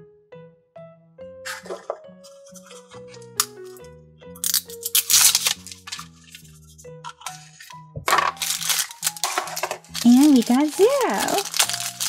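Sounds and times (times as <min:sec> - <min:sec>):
background music: 0:00.0 - 0:12.0
plastic clicks and crinkling: 0:07.1 - 0:12.0.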